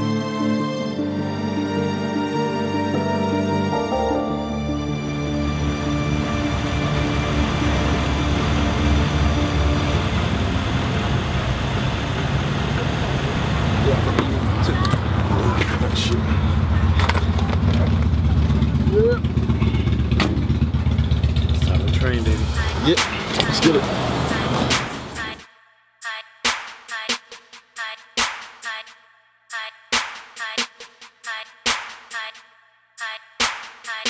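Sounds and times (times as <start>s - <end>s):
music: 0.0s - 11.4s, 22.3s - 34.0s
car engine idling: 5.3s - 25.4s
indistinct voices: 21.6s - 25.4s.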